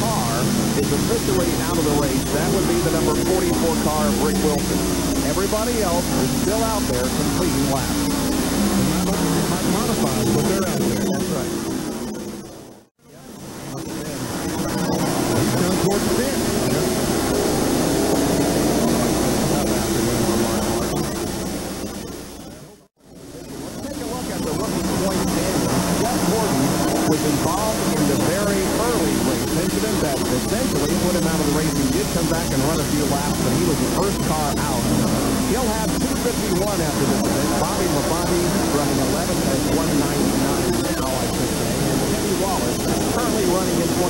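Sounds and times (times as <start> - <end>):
race car engines passing: 0.0 - 12.5, 13.4 - 21.8, 23.4 - 44.0.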